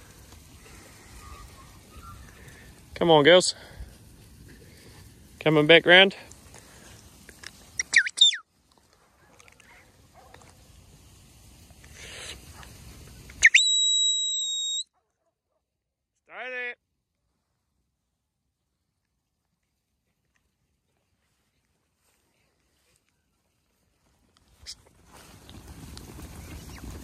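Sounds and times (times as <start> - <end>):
person whistling commands: 7.8 - 8.4, 13.4 - 14.8.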